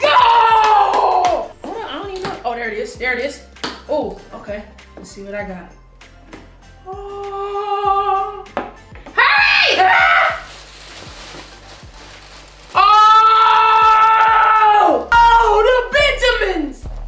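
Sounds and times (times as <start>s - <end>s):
loud excited cry: 0.0s - 1.4s, 9.2s - 10.5s, 12.8s - 15.5s
background music with a beat: 0.3s - 9.5s, 14.3s - 17.0s.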